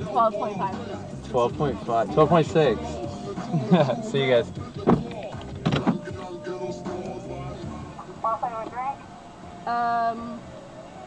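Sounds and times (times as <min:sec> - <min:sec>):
background music in a car: 0:00.0 - 0:11.0
car door shutting: 0:02.1 - 0:07.7.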